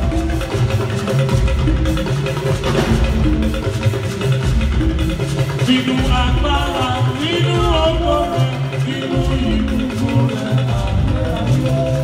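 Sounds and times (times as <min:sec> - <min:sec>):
drums keeping a steady beat: 0:00.0 - 0:12.0
choir singing: 0:05.8 - 0:12.0.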